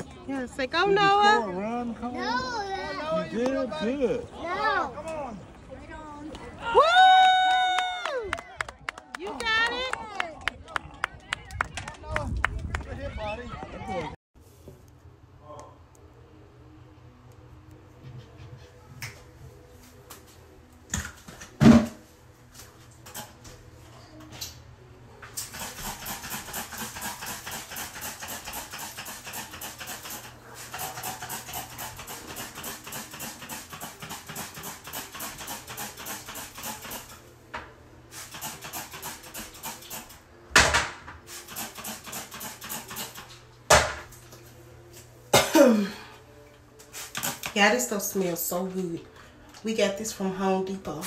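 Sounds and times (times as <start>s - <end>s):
rhythmic scrubbing on a toilet: 25.4s - 37.2s.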